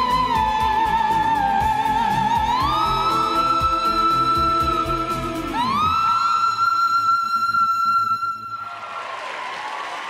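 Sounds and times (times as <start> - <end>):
backing music: 0.0 - 7.9
woman singing high note: 0.0 - 8.6
applause: 8.6 - 10.0.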